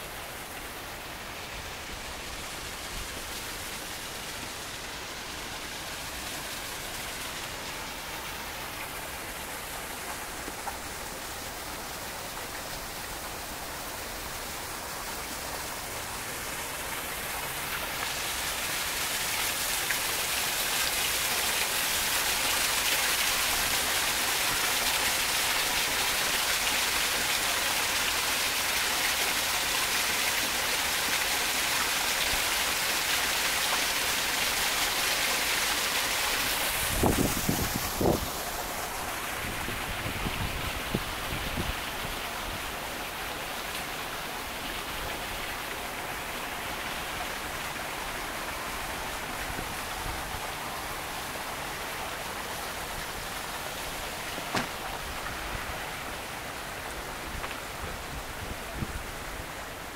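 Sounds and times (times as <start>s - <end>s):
waterfall splashing over rocks: 0.0s - 59.9s.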